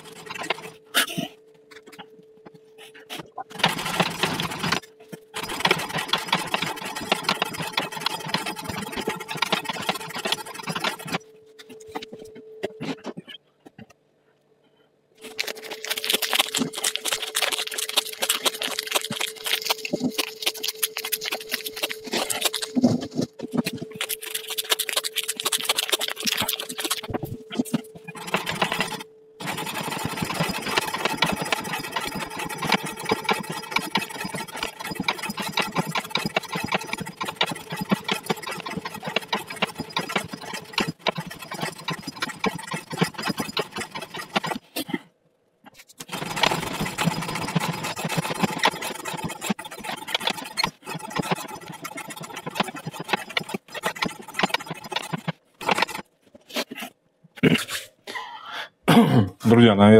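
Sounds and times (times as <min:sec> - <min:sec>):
steady hum: 0:00.0 - 0:56.1.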